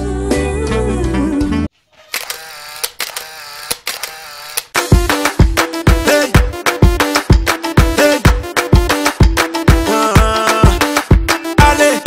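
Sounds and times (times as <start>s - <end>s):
sharp clicks: 2.1s - 4.8s.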